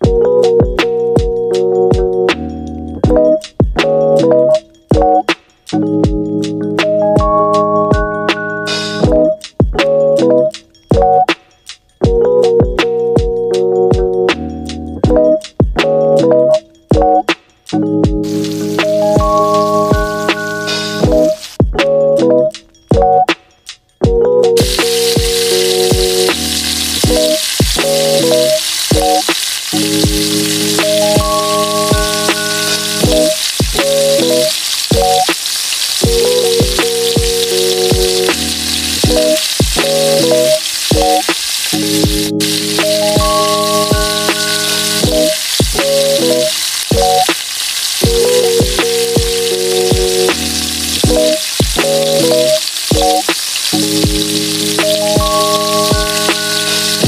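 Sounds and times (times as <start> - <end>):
background music with beat: 0.0 - 57.0
vegetables sizzling in oil: 18.2 - 21.6, 24.6 - 57.0.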